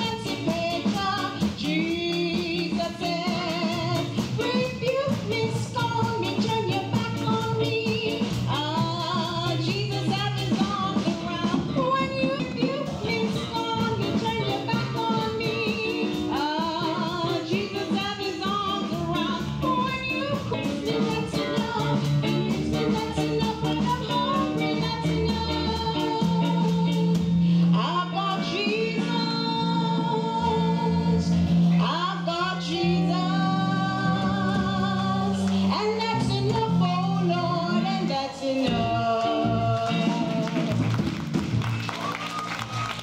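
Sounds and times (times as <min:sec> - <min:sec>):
woman singing into microphone: 0:00.0 - 0:40.8
instrumental accompaniment with beat: 0:00.0 - 0:43.0.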